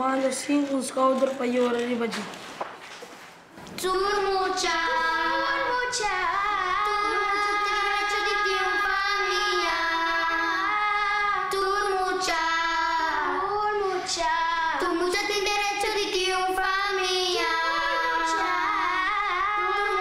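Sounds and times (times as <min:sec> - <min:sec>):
child singing slow melody: 0:03.8 - 0:20.0.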